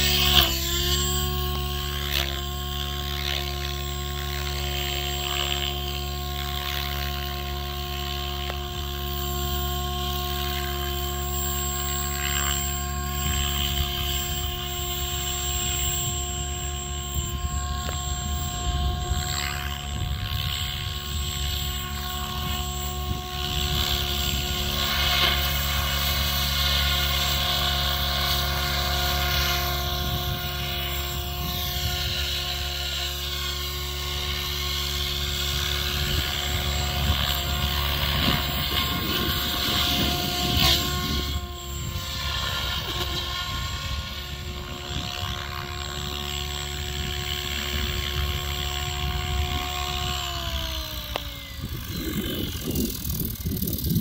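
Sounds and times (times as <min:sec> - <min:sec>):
rc helicopter rotor and motor: 0:00.0 - 0:54.0.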